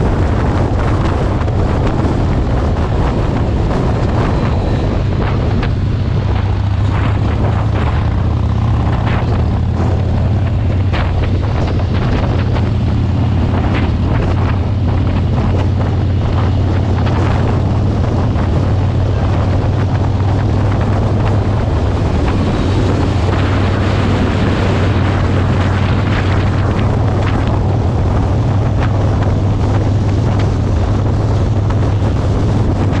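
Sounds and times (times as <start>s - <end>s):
motorcycle engine cruising: 0.0s - 33.0s
wind buffeting microphone: 0.0s - 33.0s.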